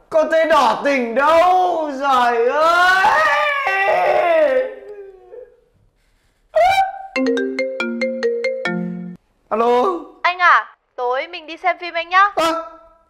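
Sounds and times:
man wailing tearfully: 2.7s - 5.4s
mobile phone ringtone: 7.2s - 9.2s.

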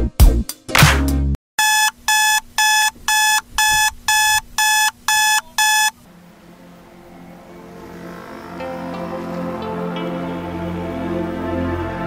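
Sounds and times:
electronic beeps: 1.6s - 6.0s.

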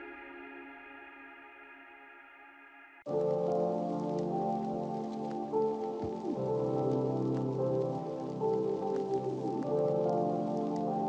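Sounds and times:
lofi hip-hop music: 3.1s - 11.0s
rain-like hiss and patter: 3.1s - 11.0s.

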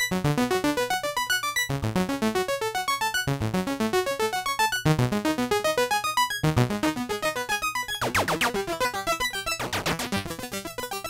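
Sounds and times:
synthesizer arpeggio: 7.8s - 11.0s
synth sweeping sound: 8.0s - 10.4s.

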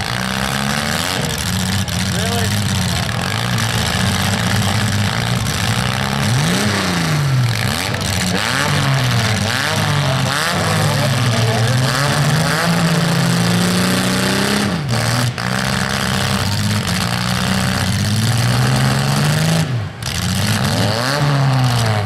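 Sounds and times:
car engines revving: 0.0s - 22.0s.

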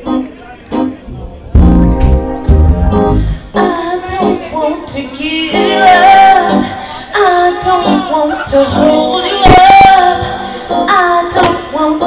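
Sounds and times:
live band playing: 0.0s - 12.0s
woman singing: 3.4s - 12.0s.

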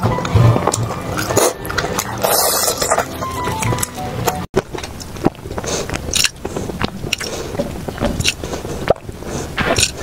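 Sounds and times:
crackly bites and chewing: 0.5s - 10.0s
steady low rumble: 4.2s - 10.0s.

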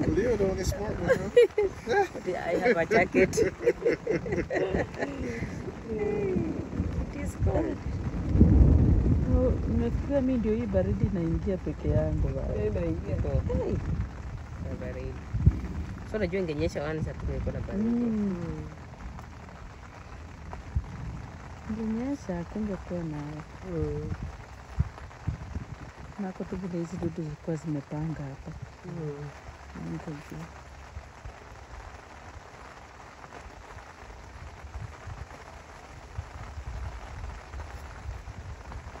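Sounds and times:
low rumble: 0.0s - 39.0s
rain pattering: 0.0s - 39.0s.

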